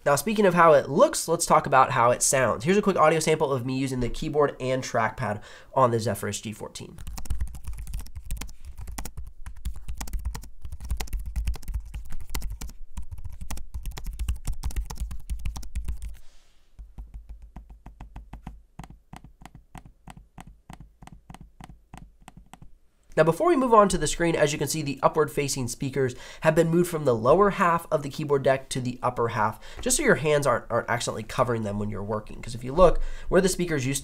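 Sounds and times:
laptop keyboard typing: 0:07.0 - 0:16.2, 0:16.8 - 0:22.7.

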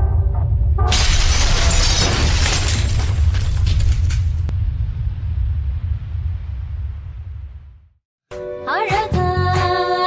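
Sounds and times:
loud shattering crash: 0:00.9 - 0:04.5.

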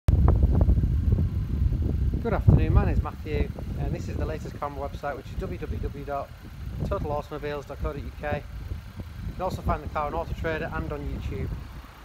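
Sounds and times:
outdoor low rumble: 0:00.1 - 0:12.0.

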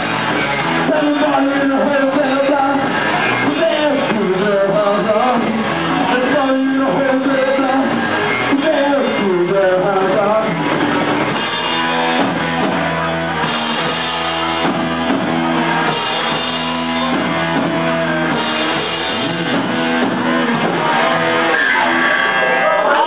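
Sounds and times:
bass guitar: 0:00.0 - 0:23.0
distorted electric guitars: 0:00.0 - 0:23.0
drum kit: 0:00.0 - 0:23.0.

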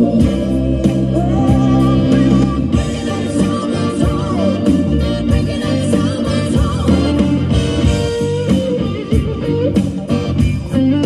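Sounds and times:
bass and drums: 0:00.0 - 0:11.0
electric guitar lead notes: 0:00.0 - 0:11.0.

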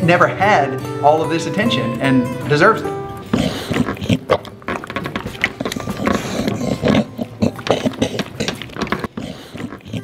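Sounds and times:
dog chewing and smacking: 0:03.3 - 0:10.0.

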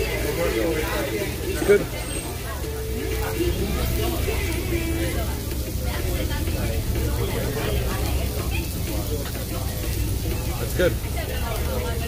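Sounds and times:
indistinct background chatter: 0:00.0 - 0:12.0.

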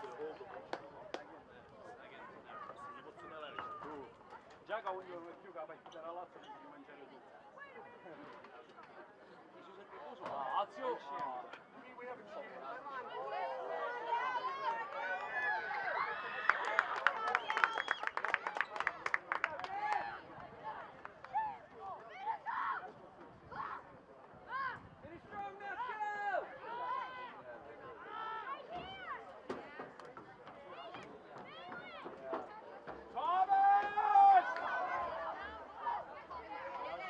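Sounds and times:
players and spectators shouting: 0:12.8 - 0:16.6, 0:21.3 - 0:23.8, 0:25.4 - 0:27.4, 0:33.1 - 0:37.0.

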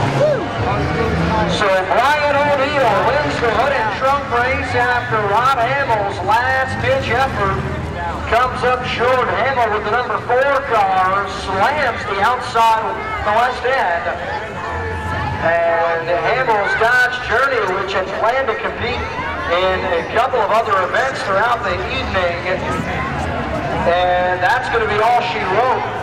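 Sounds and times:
man talking: 0:00.8 - 0:14.3, 0:15.4 - 0:22.8, 0:23.8 - 0:26.0.

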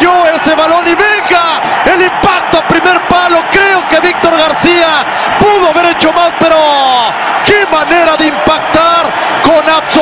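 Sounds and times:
man commentating excitedly: 0:00.0 - 0:10.0.

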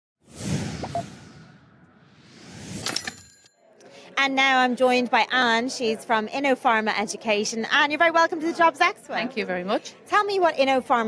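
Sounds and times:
whoosh sound effect: 0:00.2 - 0:03.1.

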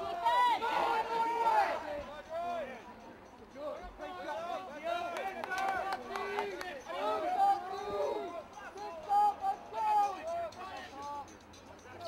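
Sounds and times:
people shouting and calling out: 0:00.0 - 0:12.0.

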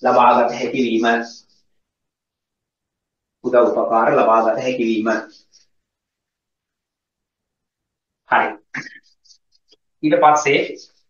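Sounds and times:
faint scattered sounds: 0:04.6 - 0:11.0
man clearing throat: 0:08.7 - 0:09.1.

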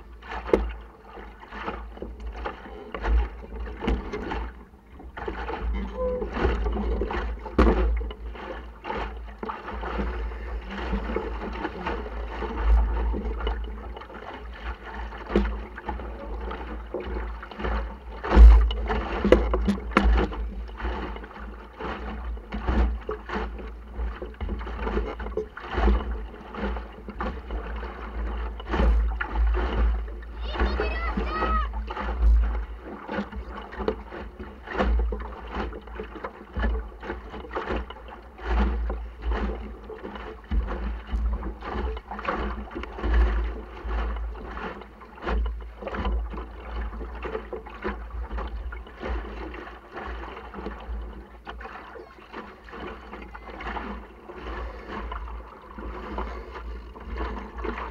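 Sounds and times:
water slapping against hull: 0:00.0 - 0:57.9
person calling out: 0:30.4 - 0:31.8.

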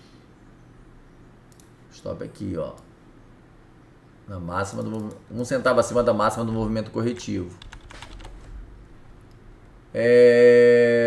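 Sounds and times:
low steady hum: 0:00.0 - 0:11.0
computer mouse clicks: 0:01.5 - 0:01.8, 0:04.6 - 0:05.2, 0:07.1 - 0:09.4.

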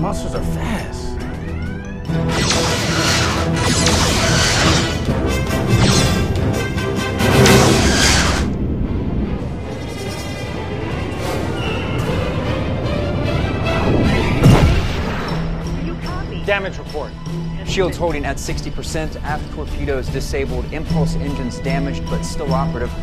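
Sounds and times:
dramatic film score: 0:00.0 - 0:23.0
weapons fire and explosions: 0:00.8 - 0:19.4
sharp heavy impact: 0:02.3 - 0:12.3, 0:14.2 - 0:15.6.

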